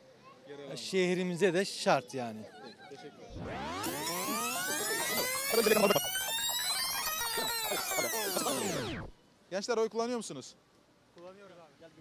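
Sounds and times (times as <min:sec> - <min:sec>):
synthesized gliding tones: 0:03.3 - 0:09.1.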